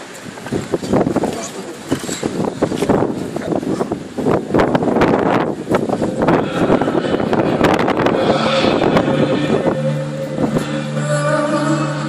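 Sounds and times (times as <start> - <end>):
wind buffeting microphone: 0.0 - 11.6
music with held notes: 6.0 - 12.0.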